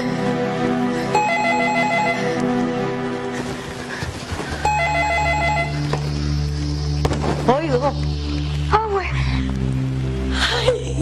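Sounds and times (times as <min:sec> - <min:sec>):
low musical drone: 0:00.0 - 0:11.0
electronic telephone ringer trilling: 0:01.2 - 0:02.3, 0:04.7 - 0:05.8.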